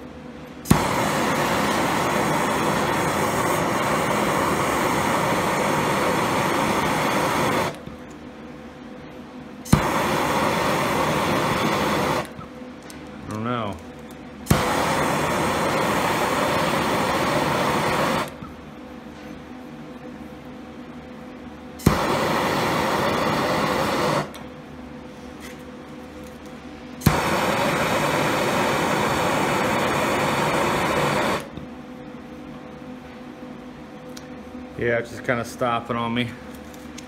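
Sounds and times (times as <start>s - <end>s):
gas torch flame hissing: 0.6s - 7.9s, 9.6s - 12.5s, 14.4s - 18.5s, 21.8s - 24.4s, 27.0s - 31.6s
gas torch igniter click: 0.7s - 3.6s, 9.7s - 12.4s, 14.5s - 18.5s, 21.8s - 24.5s, 27.0s - 31.6s.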